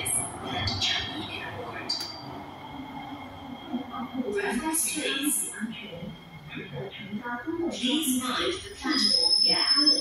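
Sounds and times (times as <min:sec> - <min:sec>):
train rumble: 0:00.0 - 0:08.7.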